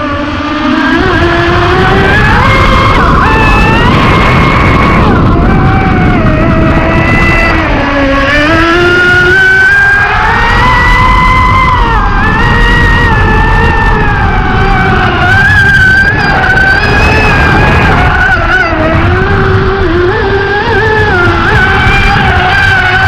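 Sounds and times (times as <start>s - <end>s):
speedboat motor whining: 0.0s - 23.0s.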